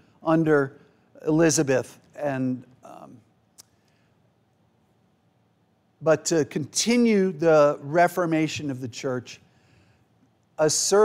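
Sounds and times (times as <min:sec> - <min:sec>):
man's voice: 0:10.6 - 0:11.0.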